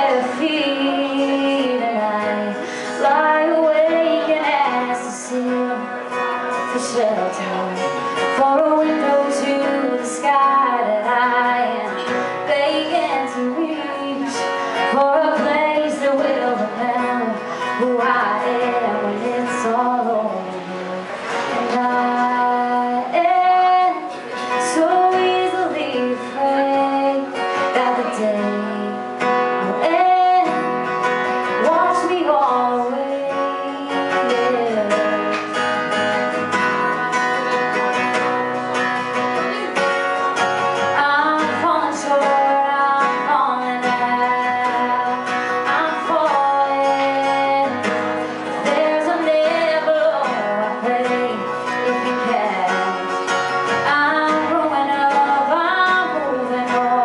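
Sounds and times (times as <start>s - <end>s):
strummed acoustic guitar: 0.0s - 57.0s
woman singing into microphone: 0.0s - 57.0s.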